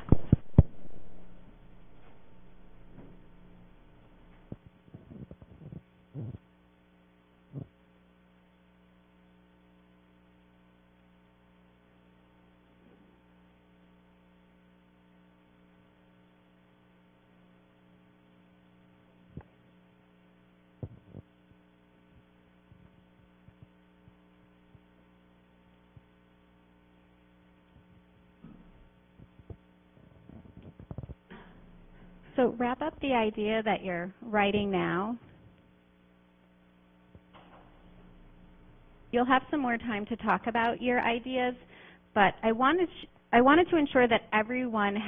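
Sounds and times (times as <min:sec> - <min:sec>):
electrical mains hum: 0:00.0 - 0:45.0.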